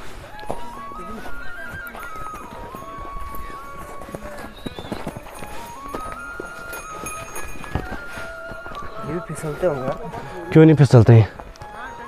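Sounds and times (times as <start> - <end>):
background music with held notes: 0.0 - 12.0
footsteps on snow: 0.0 - 12.0
horse hooves on icy snow: 0.0 - 12.0.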